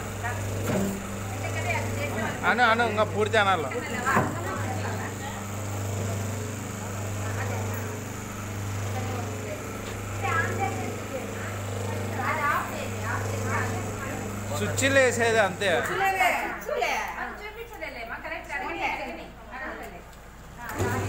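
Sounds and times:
machine motor and pump hum: 0.0s - 16.6s, 20.2s - 21.0s
women's voices: 1.2s - 2.3s, 3.7s - 5.5s, 8.8s - 14.4s, 15.9s - 21.0s.

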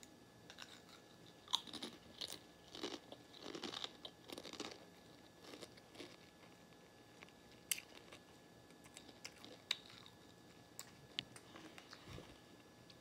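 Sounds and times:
child crunching chips: 0.5s - 6.3s.

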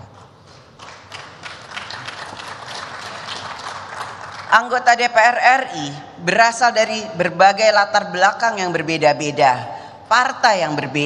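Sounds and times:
crowd applause: 0.8s - 4.5s.

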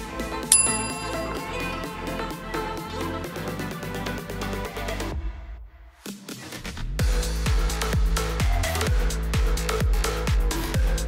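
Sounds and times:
timer bell chime: 0.5s - 2.1s.

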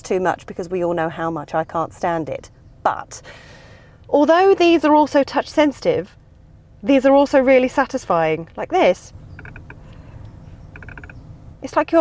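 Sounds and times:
electronic feedback ticks: 9.3s - 9.8s, 10.7s - 11.2s.

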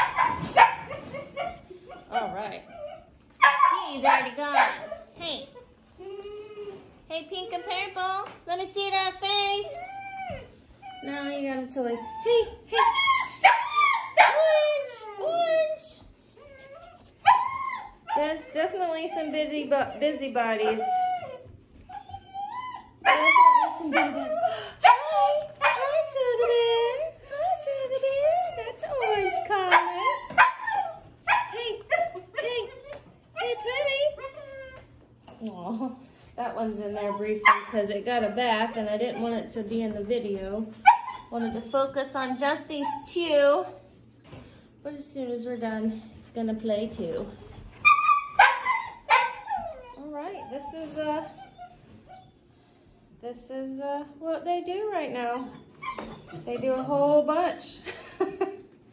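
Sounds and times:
puppy whimpering: 0.0s - 8.1s, 9.5s - 35.2s, 40.8s - 42.0s, 47.0s - 52.7s, 55.1s - 57.0s.

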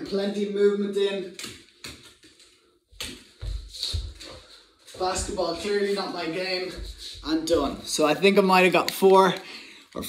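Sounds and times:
footsteps in socks on hard floor: 1.8s - 8.1s.

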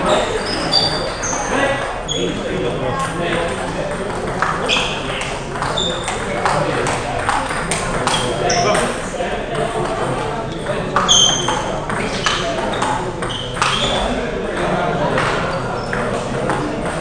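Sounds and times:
table tennis balls clicking: 3.0s - 9.0s.

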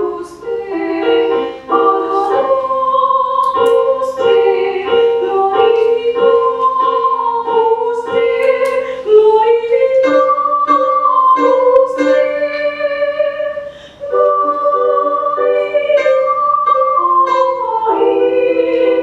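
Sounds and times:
youth choir singing: 0.0s - 19.0s.

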